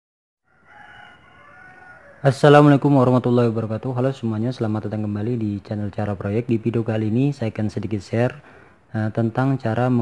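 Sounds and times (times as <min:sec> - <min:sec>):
faint drawn-out animal call: 0:00.4 - 0:02.4.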